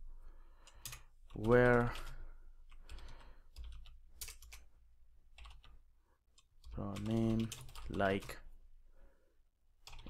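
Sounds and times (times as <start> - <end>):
keyboard typing: 0.6 - 4.7, 5.3 - 5.8, 6.4 - 8.4.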